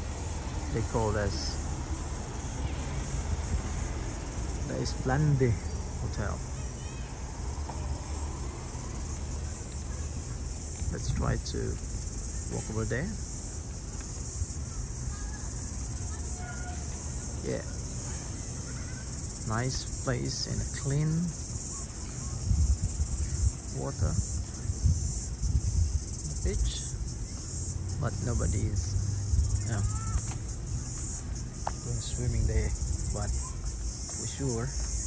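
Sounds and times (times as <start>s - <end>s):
high-pitched insect drone: 0.0s - 35.0s.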